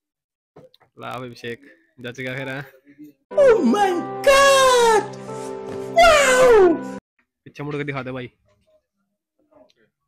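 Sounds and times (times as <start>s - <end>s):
person speaking: 3.3s - 5.3s
held music chord: 3.3s - 6.0s
high falling cry: 6.0s - 6.9s.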